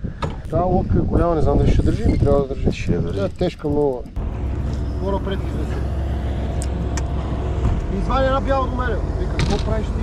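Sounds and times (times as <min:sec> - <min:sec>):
outboard motor droning: 0:04.2 - 0:10.0.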